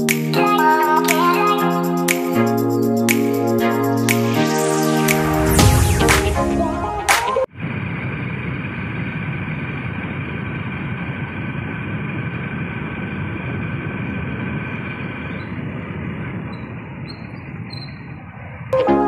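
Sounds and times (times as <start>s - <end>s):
motorbike engine: 8.0s - 17.5s.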